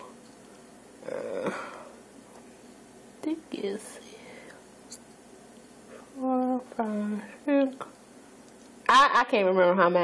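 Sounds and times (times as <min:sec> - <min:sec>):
low room hiss: 0:00.0 - 0:10.0.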